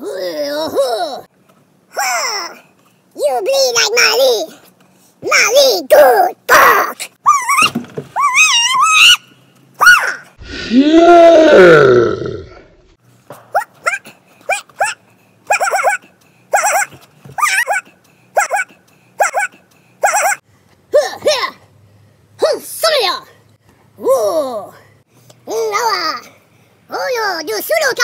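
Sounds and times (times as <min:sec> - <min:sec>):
wavering yelping calls: 0:07.2 - 0:10.4, 0:13.5 - 0:20.4
loud growl: 0:10.4 - 0:12.8
short bark-like calls: 0:13.5 - 0:20.4.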